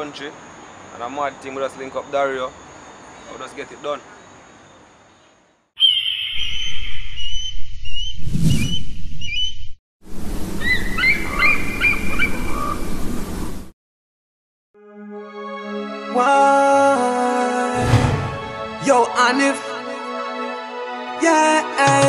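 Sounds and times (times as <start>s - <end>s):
outdoor background noise: 0.0s - 5.9s
birds chirping: 1.8s - 9.8s, 10.6s - 12.9s.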